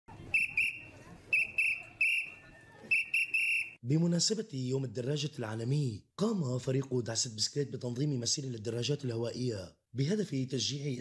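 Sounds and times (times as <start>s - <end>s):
whistle blasts: 0.3s - 3.8s.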